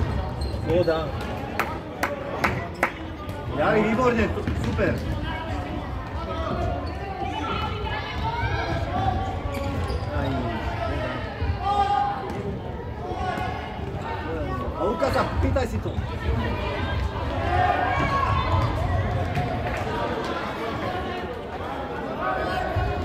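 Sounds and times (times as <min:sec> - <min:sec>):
shouting and chattering voices: 0:00.0 - 0:23.0.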